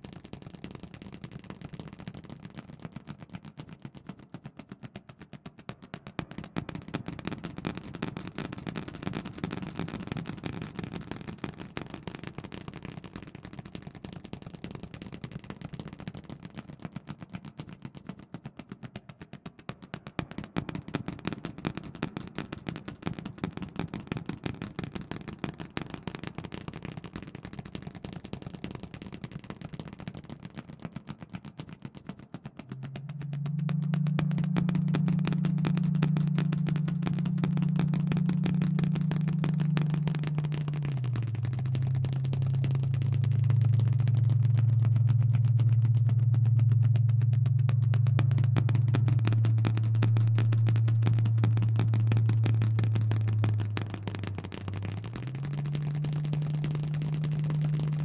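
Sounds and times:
low rumble: 0:32.7 - 0:58.0.

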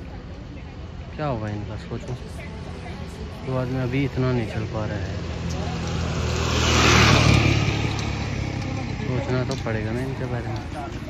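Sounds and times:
vehicle passing by: 0:03.8 - 0:11.0.

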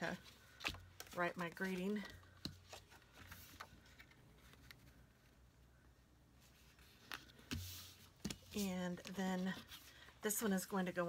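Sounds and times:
card tapping and rustling: 0:00.5 - 0:05.0.

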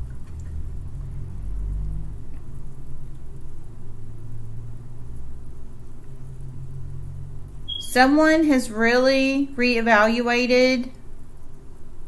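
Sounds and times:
low rumbling hum: 0:00.0 - 0:12.0.

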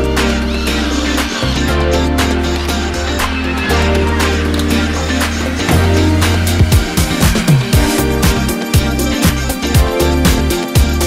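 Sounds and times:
background music with steady beat: 0:00.0 - 0:11.0
held bass line: 0:00.0 - 0:11.0.

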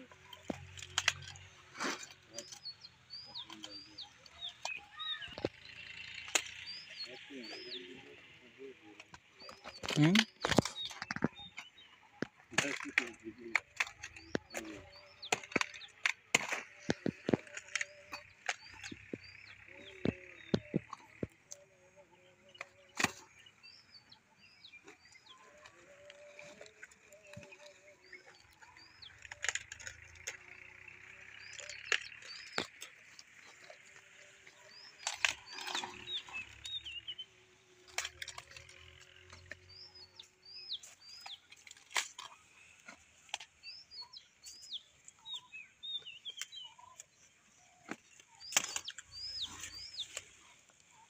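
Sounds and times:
small birds chirping: 0:00.0 - 0:51.0
cauliflower stalks snapping: 0:00.2 - 0:02.7, 0:03.3 - 0:07.3, 0:09.0 - 0:21.6, 0:22.6 - 0:23.4, 0:24.7 - 0:36.8, 0:37.7 - 0:43.6, 0:47.8 - 0:50.9.

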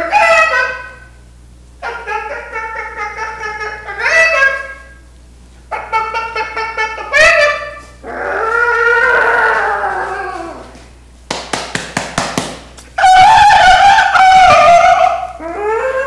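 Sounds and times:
man imitating animal cries: 0:01.8 - 0:04.9, 0:05.7 - 0:10.7, 0:13.0 - 0:16.0.

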